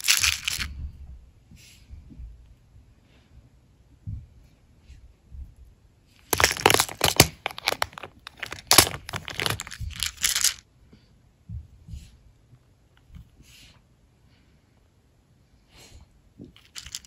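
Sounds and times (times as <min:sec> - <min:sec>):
plastic containers knocking together: 0:00.0 - 0:00.7, 0:06.3 - 0:10.6
small charms rattling: 0:00.0 - 0:00.7, 0:06.3 - 0:10.6, 0:16.6 - 0:17.0.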